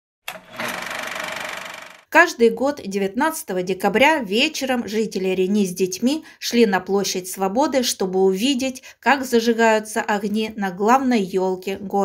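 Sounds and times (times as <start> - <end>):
fast rattling buzz: 0.3 - 2.1.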